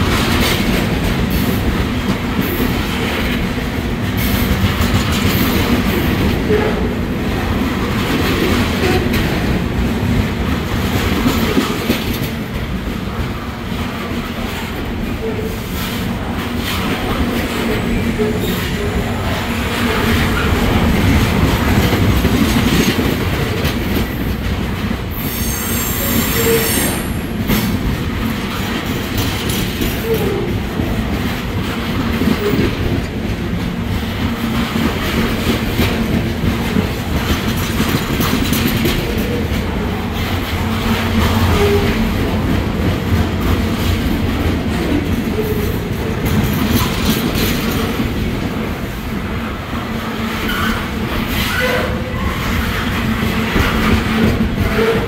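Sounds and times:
train wheels rumbling on rails: 0.0s - 55.0s
train wheel squeals: 25.2s - 27.3s, 50.4s - 52.6s.

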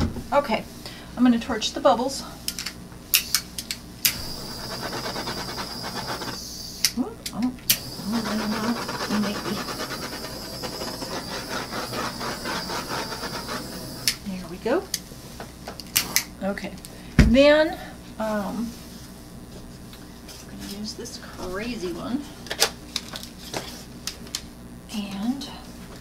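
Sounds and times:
torch clicks: 3.1s - 14.3s
torch flame hissing: 4.0s - 6.9s, 7.7s - 14.3s.

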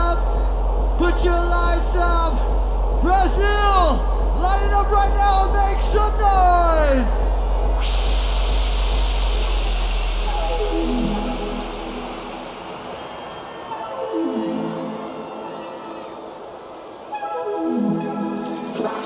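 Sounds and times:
heavy bass: 0.0s - 14.4s
sustained synth chords: 0.0s - 18.8s.

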